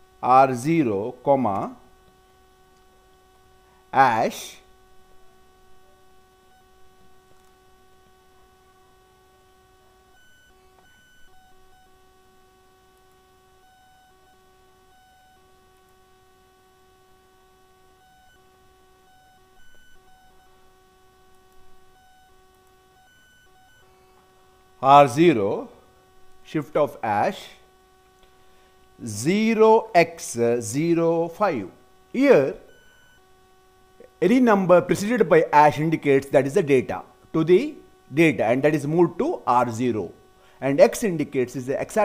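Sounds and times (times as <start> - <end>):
faint electrical whine: 0.0 - 42.0.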